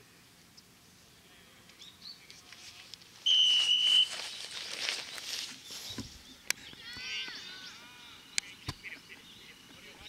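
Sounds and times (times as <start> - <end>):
referee's whistle blast: 3.2 - 4.2.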